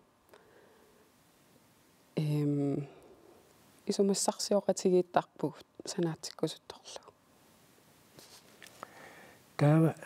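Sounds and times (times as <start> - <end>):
woman speaking: 2.2 - 2.9, 3.9 - 7.1.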